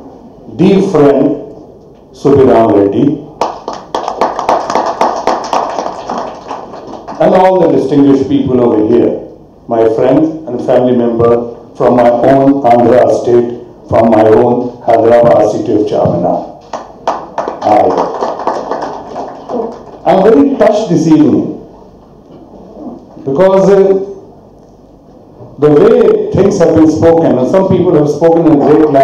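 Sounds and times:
audience applauding: 3.4s - 7.2s, 16.7s - 20.1s.

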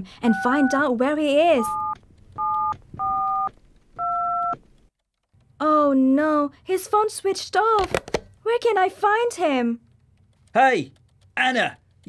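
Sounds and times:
telephone keypad tones: 0.2s - 0.9s, 1.5s - 4.6s.

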